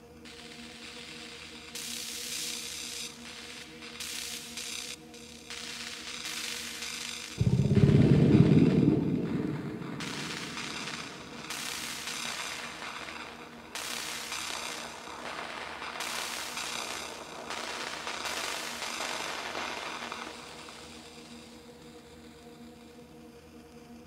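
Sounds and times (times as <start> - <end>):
low synthesizer drone: 7.4 - 11.9.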